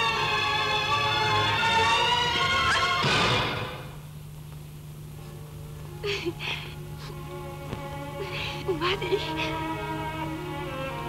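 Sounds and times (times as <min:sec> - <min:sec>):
soft background music: 0:00.0 - 0:03.9, 0:05.2 - 0:11.0
steady low hum: 0:00.0 - 0:11.0
woman sobbing: 0:06.0 - 0:07.2, 0:08.1 - 0:09.6.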